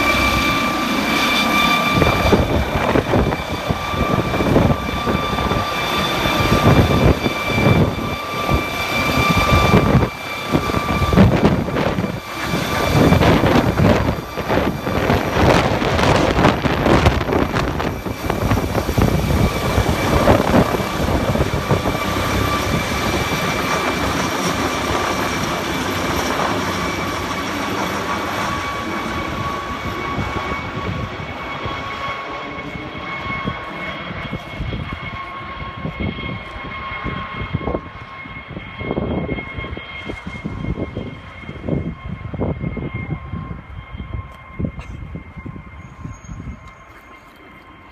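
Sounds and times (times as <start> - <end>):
helicopter rotor noise: 0.0 - 47.9
turbine whine: 0.0 - 47.9.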